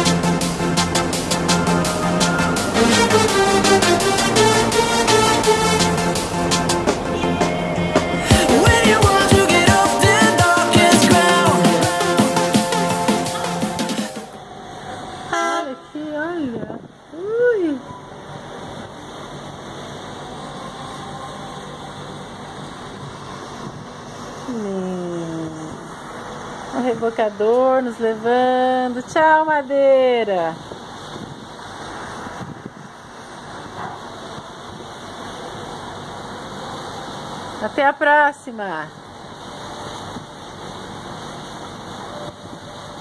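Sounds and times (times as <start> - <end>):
background music: 0.0 - 14.4.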